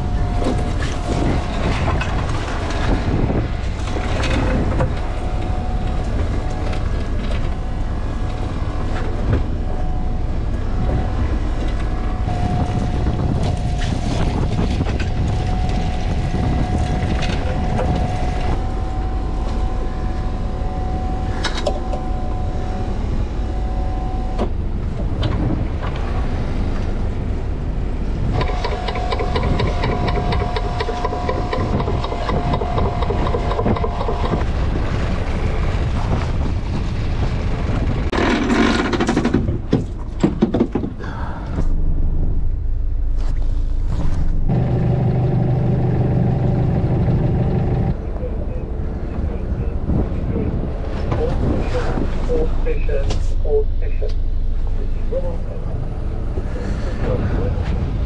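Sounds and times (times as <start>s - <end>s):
boat engine rumble: 0.0s - 58.0s
line hauler whine: 0.0s - 58.0s
sharp knocks and clatters: 38.1s - 41.0s.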